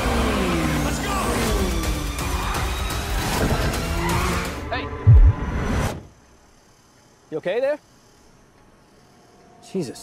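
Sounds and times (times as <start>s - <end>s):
cars driving fast: 0.0s - 5.5s
trailer music: 0.0s - 6.1s
heavy low thump: 5.0s - 5.6s.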